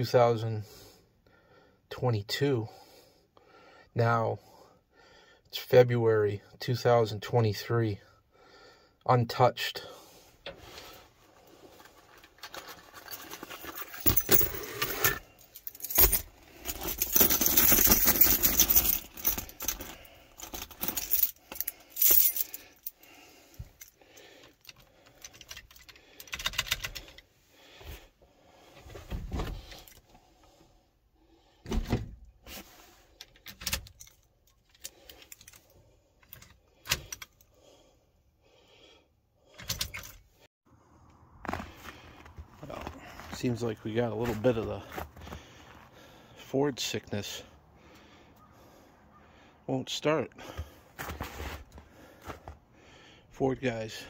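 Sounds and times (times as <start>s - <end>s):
key ring jangling: 13.7s - 23.0s.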